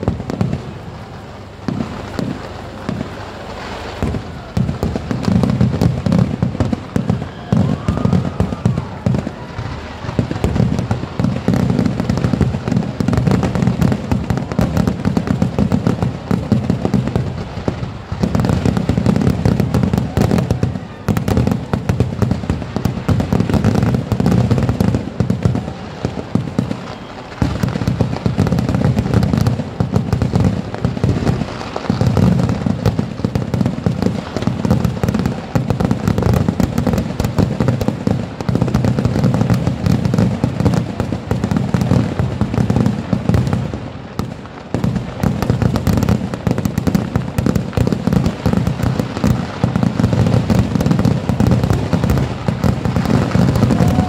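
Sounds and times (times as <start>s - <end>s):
fireworks bangs and crackling: 0.0s - 54.0s.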